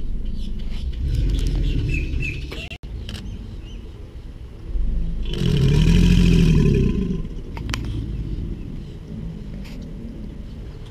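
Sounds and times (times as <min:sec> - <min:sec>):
birds chirping faintly: 0:00.0 - 0:05.2
low rumble: 0:00.0 - 0:10.9
alligator bellowing: 0:05.1 - 0:07.6.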